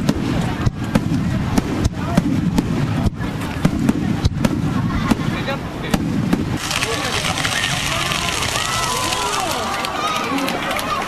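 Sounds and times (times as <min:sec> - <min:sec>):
firework fizzing hiss: 0:00.0 - 0:10.0
firework bangs and crackles: 0:00.0 - 0:11.0.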